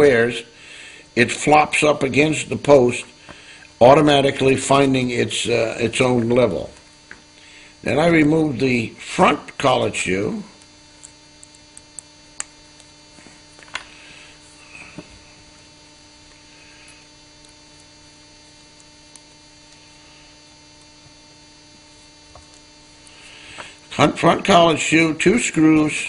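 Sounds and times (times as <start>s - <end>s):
electrical mains hum: 0.0s - 26.0s.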